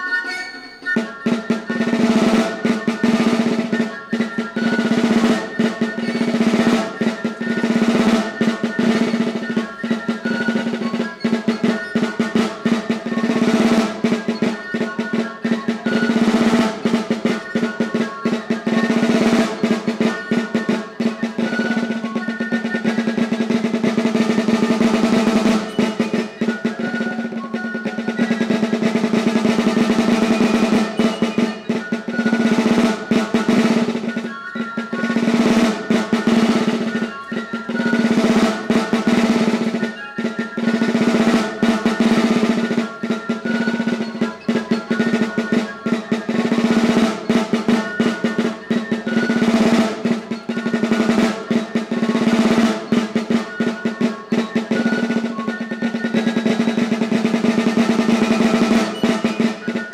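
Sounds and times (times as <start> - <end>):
snare drum played with sticks: 0.0 - 59.9.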